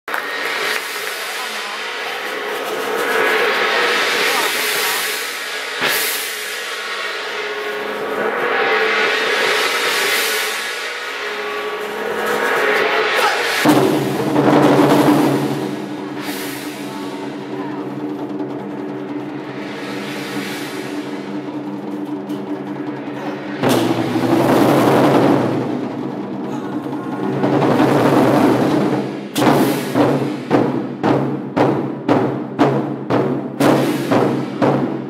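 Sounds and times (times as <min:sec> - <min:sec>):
large barrel drums: 0:00.0 - 0:35.0
steady sustained tones: 0:00.1 - 0:29.4
sharp drum hits: 0:00.2 - 0:35.0.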